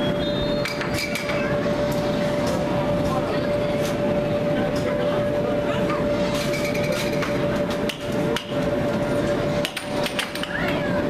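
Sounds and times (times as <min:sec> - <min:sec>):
blower humming: 0:00.0 - 0:11.0
background chatter: 0:00.6 - 0:11.0.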